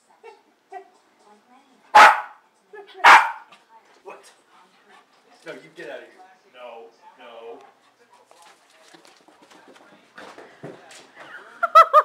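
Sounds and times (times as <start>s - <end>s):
dog barking: 1.9s - 2.4s, 3.0s - 3.5s.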